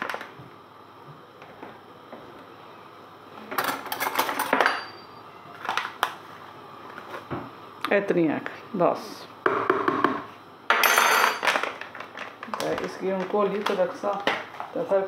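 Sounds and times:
plastic-foil packet crinkling: 0:11.4 - 0:15.0.

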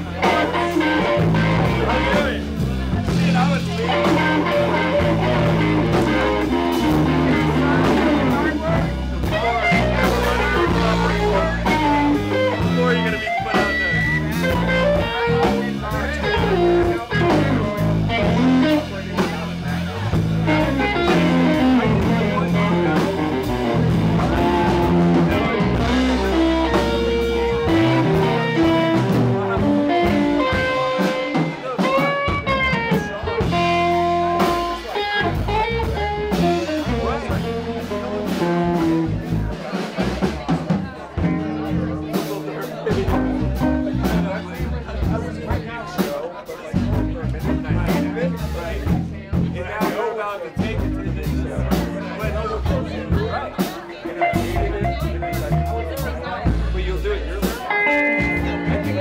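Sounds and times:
electric guitar: 0:00.0 - 0:46.1, 0:57.4 - 0:59.0
electric bass: 0:00.0 - 0:49.9, 0:50.5 - 0:59.0
drum kit: 0:00.0 - 0:59.0.

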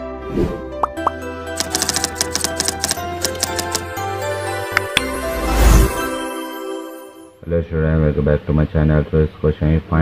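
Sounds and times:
background music: 0:00.0 - 0:07.6
keyboard typing clicks: 0:00.8 - 0:03.8.

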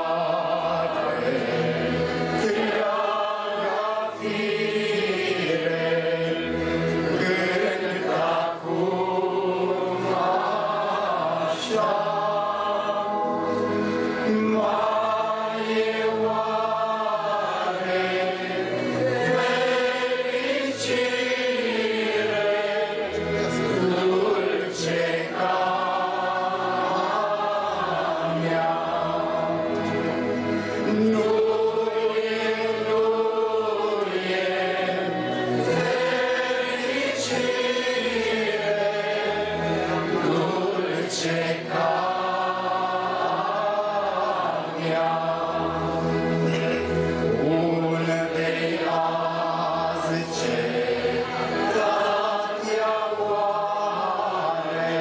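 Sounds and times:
group singing a slow hymn: 0:00.0 - 0:55.0.

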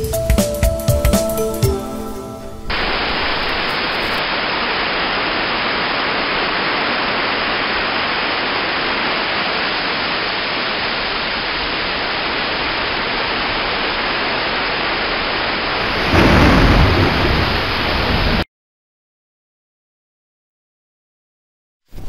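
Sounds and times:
heavy rain hissing: 0:01.1 - 0:18.4.

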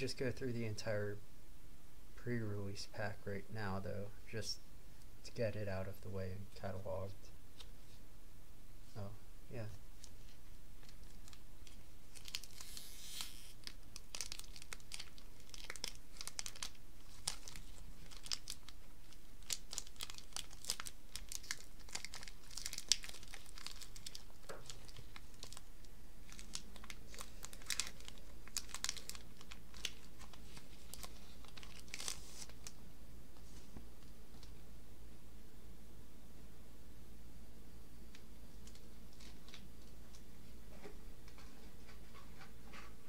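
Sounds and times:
foil wrapper tearing and crinkling: 0:10.8 - 0:32.8.

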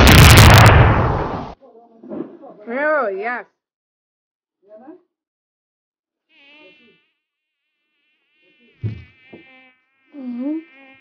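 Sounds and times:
flying insect buzzing: 0:06.1 - 0:11.0.

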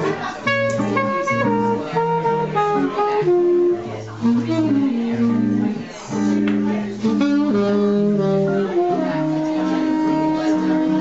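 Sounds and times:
alto saxophone melody: 0:00.0 - 0:11.0
guitar accompaniment: 0:00.0 - 0:11.0.

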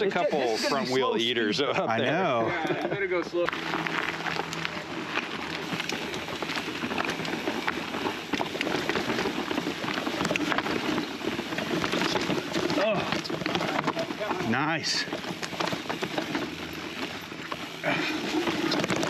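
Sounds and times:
bike tyres crunching over dirt: 0:00.0 - 0:19.0
bike knocks and rattles: 0:03.5 - 0:19.0.

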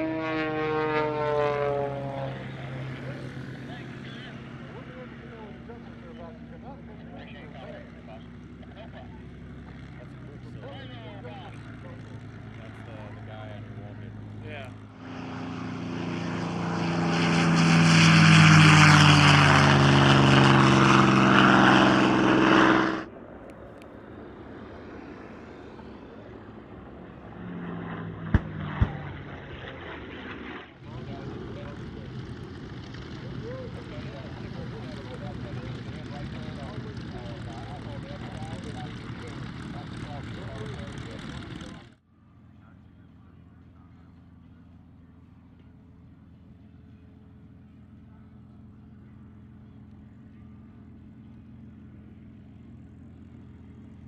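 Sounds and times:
plane engine taxiing: 0:00.0 - 0:54.0
propeller plane in flight: 0:00.0 - 0:54.0
propeller plane passing: 0:00.0 - 0:54.0.

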